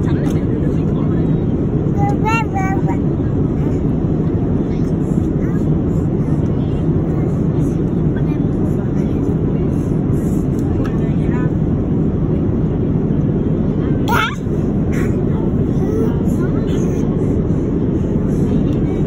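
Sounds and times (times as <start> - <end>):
airliner cabin engine rush: 0.0 - 19.0.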